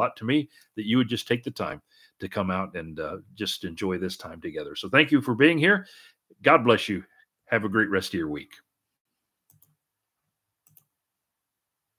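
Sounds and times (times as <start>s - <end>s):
faint short clicks: 10.6s - 10.9s.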